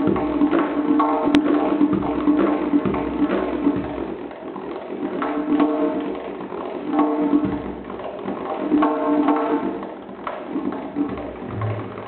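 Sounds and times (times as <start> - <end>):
goblet drum fast roll: 0.0 - 12.0.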